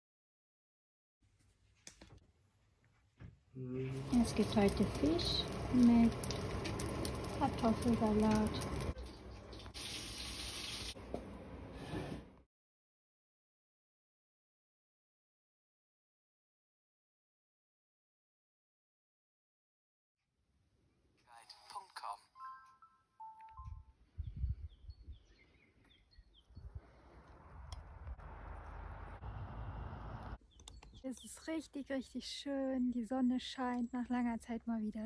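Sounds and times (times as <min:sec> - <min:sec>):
running water: 0:03.8 - 0:11.0
songbirds chirping: 0:07.7 - 0:09.7, 0:23.2 - 0:27.9, 0:30.4 - 0:34.9.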